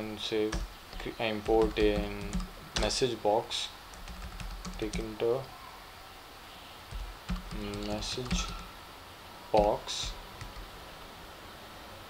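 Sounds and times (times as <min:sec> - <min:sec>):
computer keyboard keystrokes: 0:00.5 - 0:03.0, 0:03.9 - 0:05.2, 0:06.9 - 0:08.7, 0:09.6 - 0:10.7.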